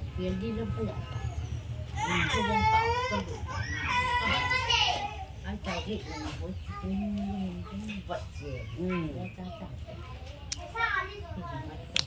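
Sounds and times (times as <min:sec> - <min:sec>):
child whining cry: 0:02.0 - 0:05.2.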